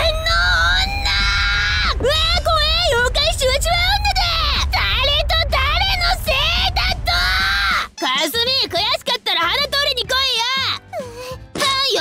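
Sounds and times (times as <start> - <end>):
low rumble: 0.0 - 8.0
woman yelling angrily: 11.6 - 12.0.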